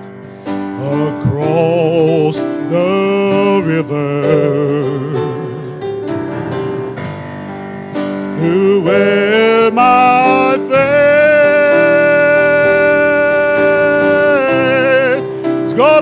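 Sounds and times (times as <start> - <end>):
instrumental accompaniment: 0.0 - 16.0
man singing gospel song: 0.6 - 6.0, 8.2 - 16.0.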